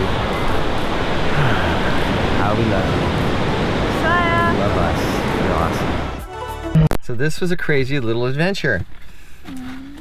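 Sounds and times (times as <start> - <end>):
ocean surf breaking: 0.0 - 6.2
wind rumbling on microphone: 0.0 - 6.2.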